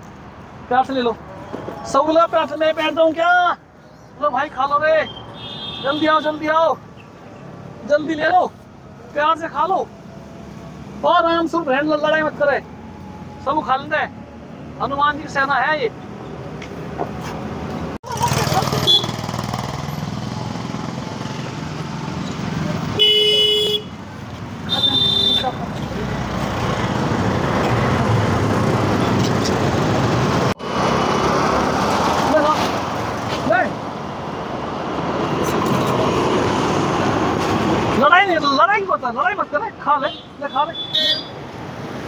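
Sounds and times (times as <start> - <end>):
traffic noise: 0.0 - 42.0
vehicle horn toots: 5.4 - 6.4, 18.8 - 19.2, 23.0 - 24.0, 24.6 - 25.6, 40.1 - 41.3.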